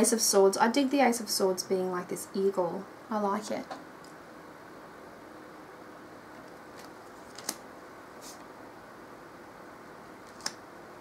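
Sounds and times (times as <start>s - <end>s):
faint room hiss: 0.0s - 11.0s
cards clicking: 6.8s - 7.6s, 10.2s - 10.6s
cards swishing: 8.2s - 8.5s.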